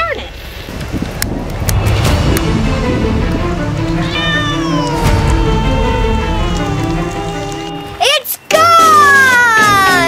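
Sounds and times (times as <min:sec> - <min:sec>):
low rumbling microphone noise: 0:00.0 - 0:04.1
boy's voice: 0:08.0 - 0:10.0.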